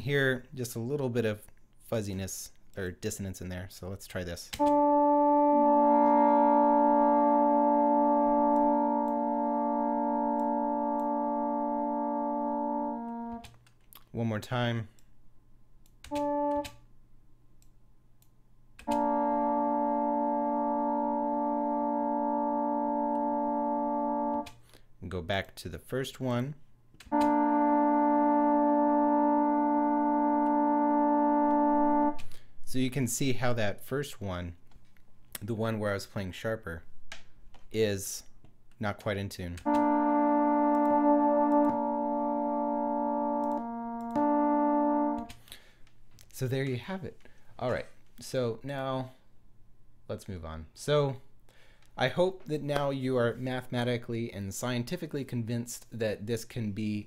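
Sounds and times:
trombone notes: 4.1 - 13.6, 16.1 - 16.9, 18.8 - 24.8, 27.1 - 33.7, 39.6 - 45.8.

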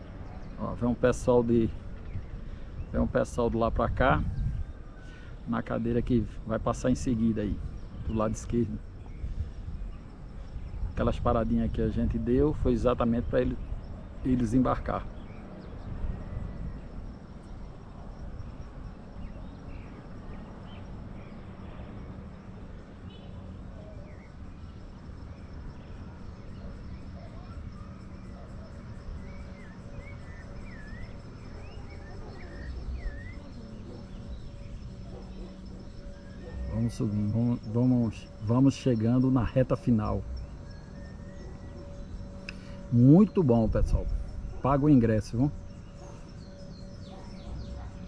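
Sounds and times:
insects droning: 0.0 - 48.0.

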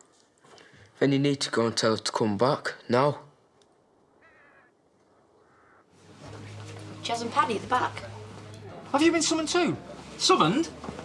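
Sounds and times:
faint bird calls: 4.1 - 6.0.

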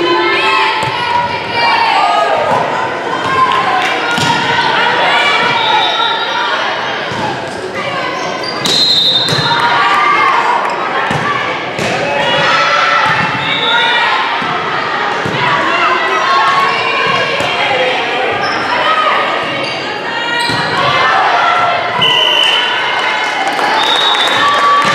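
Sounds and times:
spectators' voices: 0.0 - 24.9.

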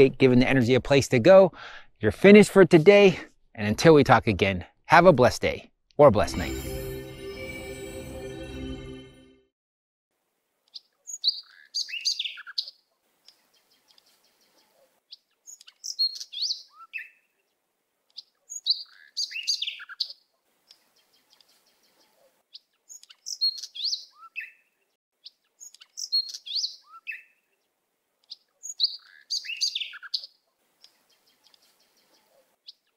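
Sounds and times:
songbird chirping: 10.6 - 32.9.

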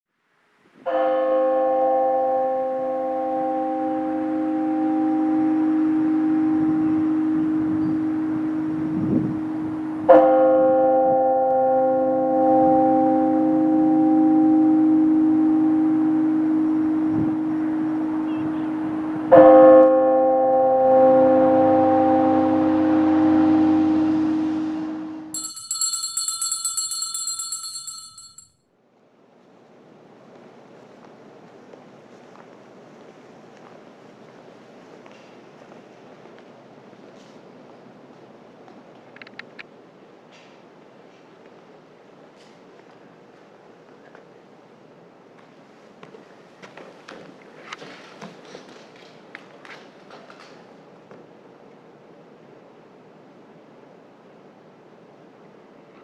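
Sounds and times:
large church bell tolling: 0.9 - 28.3
high shimmering ring: 21.8 - 28.5.

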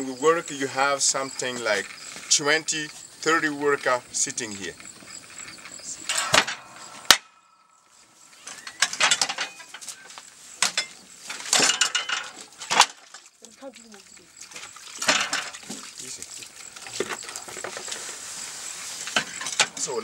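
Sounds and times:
brick press clanks and rattles: 6.0 - 7.3, 8.5 - 9.9, 10.6 - 13.2, 15.0 - 15.7, 19.2 - 19.8
ringing metallic clang: 6.0 - 9.9.

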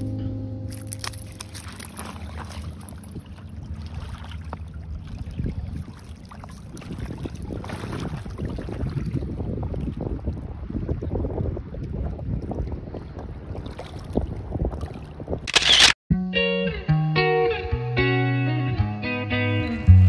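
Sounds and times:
river water flowing: 0.0 - 8.8
wind buffeting microphone: 1.8 - 15.9.

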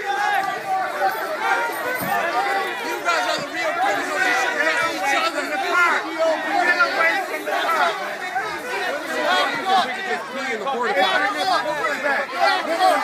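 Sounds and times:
crowd babble: 0.0 - 13.0.

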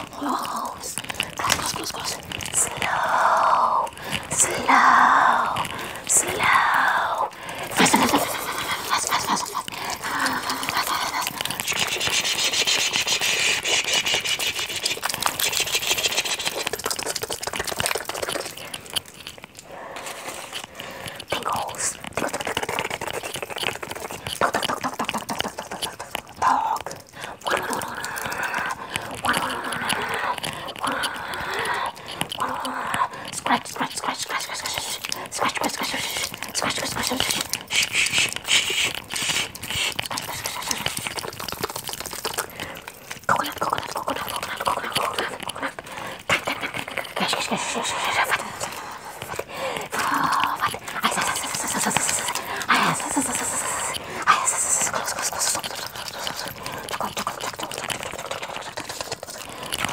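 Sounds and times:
person whispering: 0.0 - 59.9.

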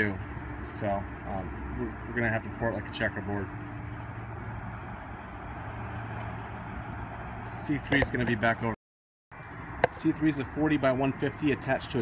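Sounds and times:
vehicle low hum: 0.0 - 12.0.

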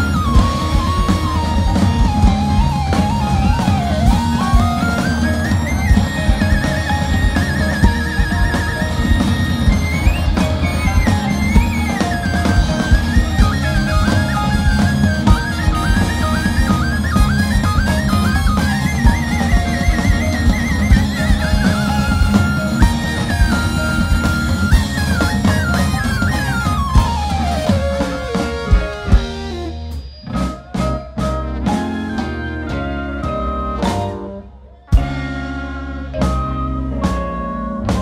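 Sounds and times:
bass guitar groove: 0.0 - 38.0
drum kit: 0.0 - 38.0
electric guitar: 0.0 - 38.0
lead melody with trills: 0.0 - 38.0
trumpet: 0.0 - 38.0.

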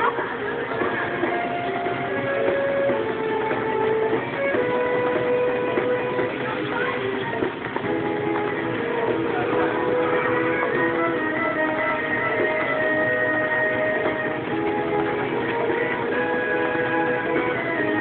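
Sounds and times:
guitar music with held notes: 0.0 - 18.0.

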